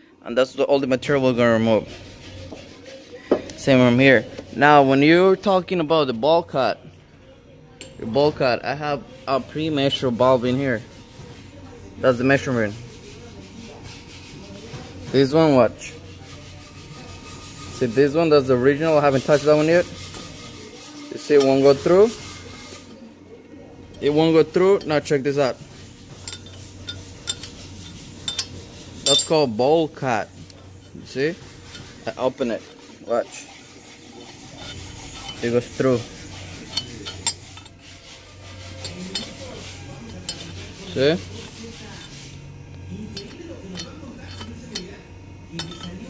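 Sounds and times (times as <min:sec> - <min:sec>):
steady low hum: 0:00.6 - 0:46.0
metal rod clinking on metal: 0:28.2 - 0:29.5, 0:38.8 - 0:39.4, 0:43.1 - 0:46.0.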